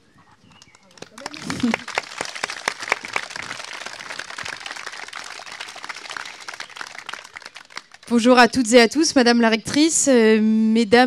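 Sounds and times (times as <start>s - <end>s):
audience clapping: 0.5s - 8.2s.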